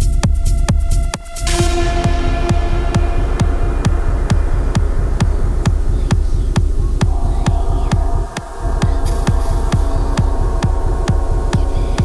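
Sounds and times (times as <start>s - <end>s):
techno kick drum: 0.0s - 12.0s
synth drone: 1.4s - 12.0s.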